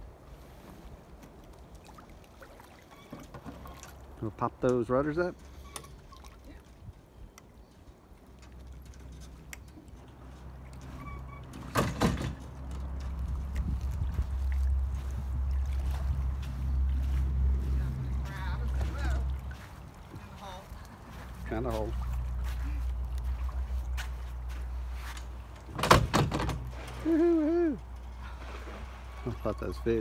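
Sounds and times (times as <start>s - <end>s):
wind buffeting microphone: 13.0s - 18.2s.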